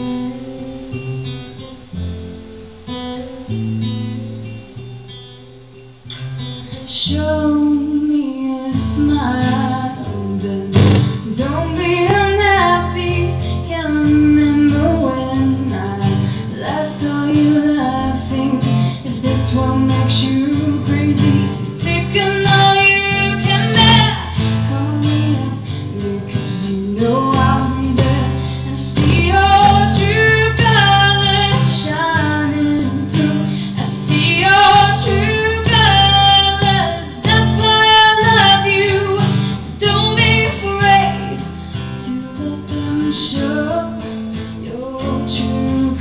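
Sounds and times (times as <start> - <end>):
acoustic guitar strumming: 0.0 - 46.0
woman singing into microphone: 6.7 - 46.0.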